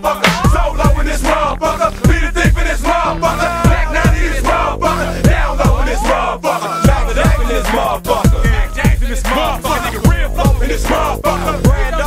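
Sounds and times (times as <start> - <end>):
deep bass kicks: 0.0 - 12.0
rapping over a beat: 0.0 - 12.0.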